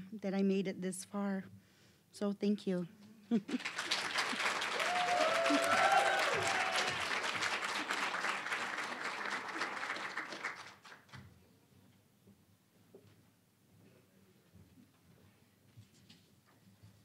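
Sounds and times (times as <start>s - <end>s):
audience applauding: 3.5s - 11.2s.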